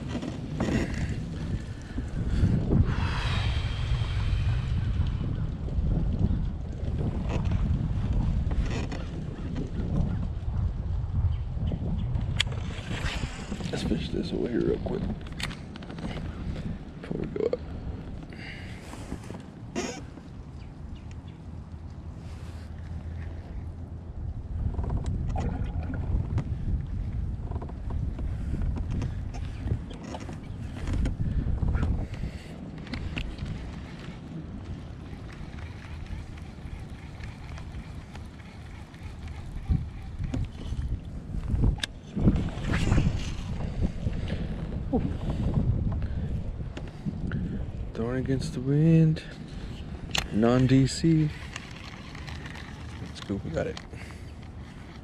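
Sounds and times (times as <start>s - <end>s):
water against kayak hull: 0.0s - 10.1s, 12.5s - 47.8s, 49.3s - 55.0s
wind buffeting microphone: 0.0s - 55.0s.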